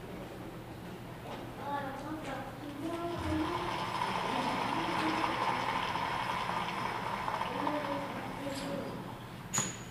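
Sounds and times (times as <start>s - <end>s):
audience applause: 3.4s - 8.4s.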